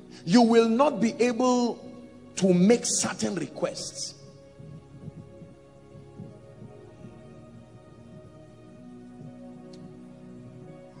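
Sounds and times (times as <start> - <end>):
soft background music: 0.0 - 11.0
person preaching: 0.2 - 4.3.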